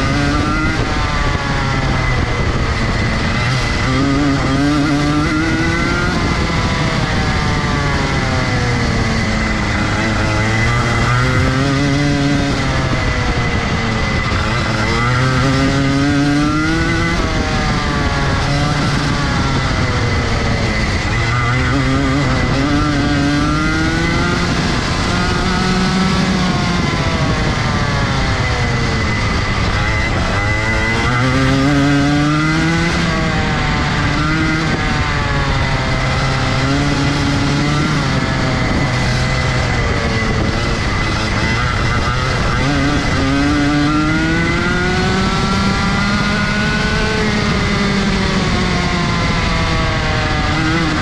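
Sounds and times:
constant high whine: 0:00.0 - 0:51.0
kart engine revving: 0:00.0 - 0:51.0.

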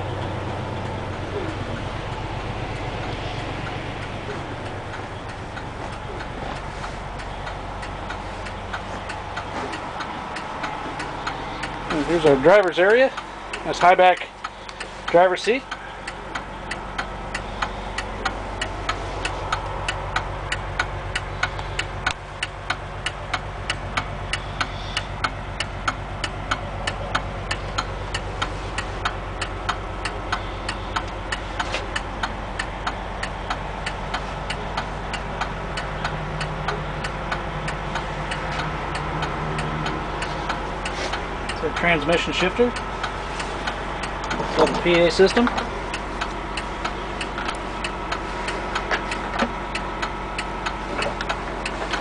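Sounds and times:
diesel engine idling: 0:00.0 - 0:52.0
regular sharp ticking: 0:00.0 - 0:52.0.

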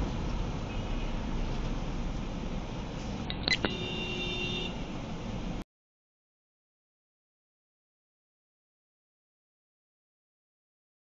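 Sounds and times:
street traffic rumble: 0:00.0 - 0:05.6.

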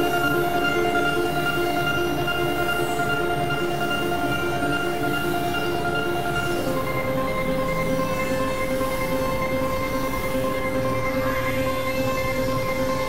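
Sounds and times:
synthesizer drone: 0:00.0 - 0:13.0.

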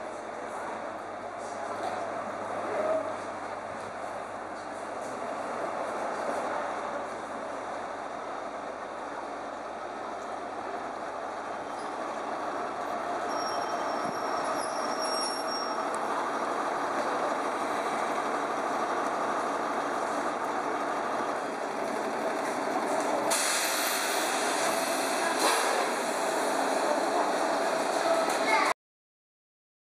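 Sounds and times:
diesel train engine running: 0:00.0 - 0:28.8
loud hiss of released air: 0:23.3 - 0:26.4.

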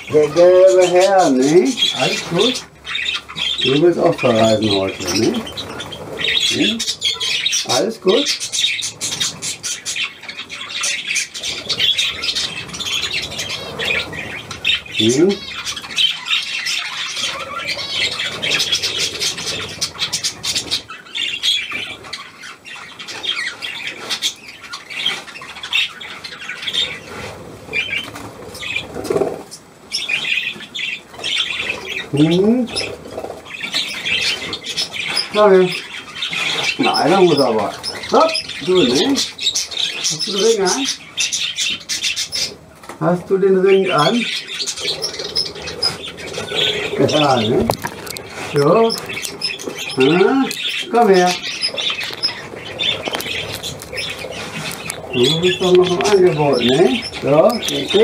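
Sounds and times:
budgerigars chattering and squawking: 0:00.0 - 0:58.0.

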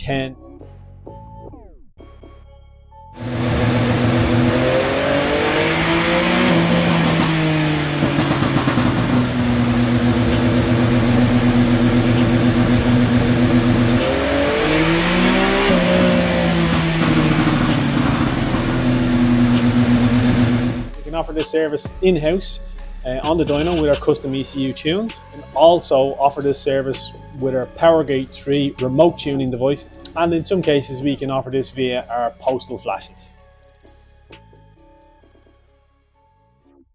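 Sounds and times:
motorcycle engine running hard: 0:03.2 - 0:21.0.

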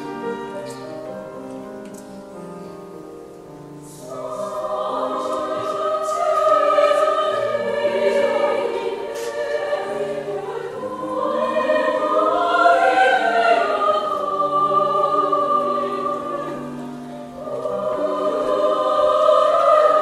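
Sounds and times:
women's choir singing in harmony: 0:00.0 - 0:01.4, 0:02.2 - 0:20.0.

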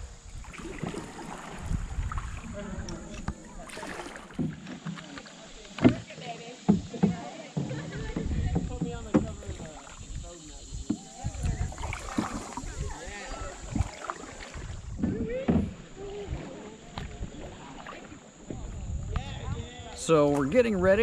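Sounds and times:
wind rumbling on microphone: 0:00.0 - 0:03.7, 0:07.8 - 0:21.0
paddle strokes in water: 0:00.0 - 0:19.2
knocks on canoe: 0:04.3 - 0:05.0, 0:05.7 - 0:10.0, 0:14.6 - 0:15.9
faint voices: 0:04.8 - 0:20.4.

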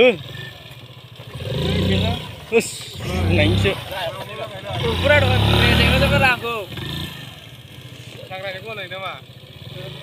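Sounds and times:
scooter engine revving: 0:00.0 - 0:10.0
voices talking: 0:00.0 - 0:10.0.

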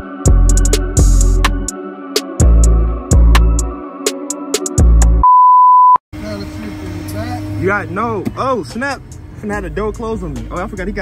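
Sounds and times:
high-pitched electronic beep: 0:05.2 - 0:06.0.

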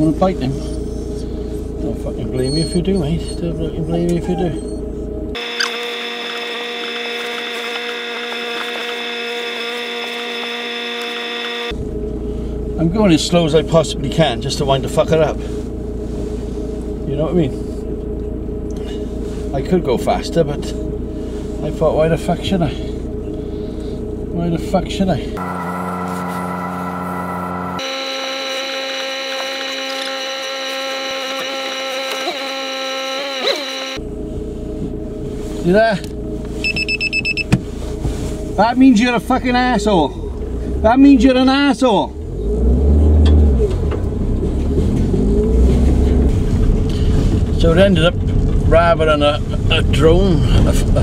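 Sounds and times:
car road noise: 0:00.0 - 0:51.0
electronic hum: 0:05.3 - 0:11.7, 0:25.4 - 0:35.2
droning chord: 0:25.4 - 0:35.3.

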